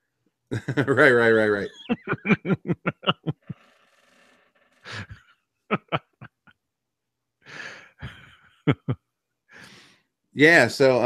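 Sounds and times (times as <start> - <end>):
man laughing in short chuckles: 1.6 - 3.6, 4.9 - 6.6, 8.0 - 9.0.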